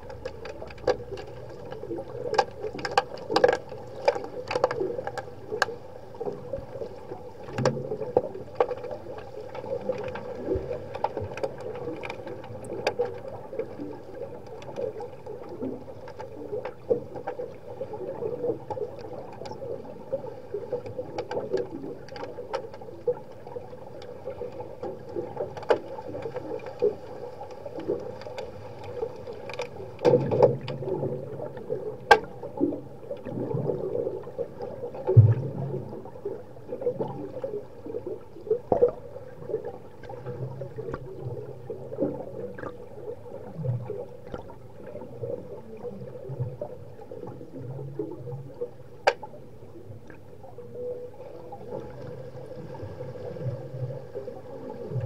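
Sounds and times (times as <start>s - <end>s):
sticks and puck clicking underwater: 0.0s - 50.4s
underwater hum: 0.0s - 55.0s.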